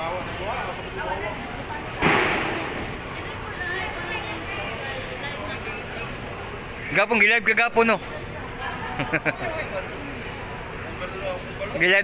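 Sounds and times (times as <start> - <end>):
people chatting and laughing: 0.0 - 12.0
loud smack: 2.0 - 2.8.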